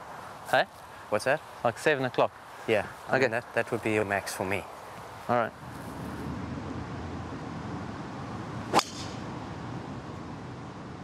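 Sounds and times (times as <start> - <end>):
low background noise: 0.0 - 11.0
golf club striking ball: 8.7 - 9.2.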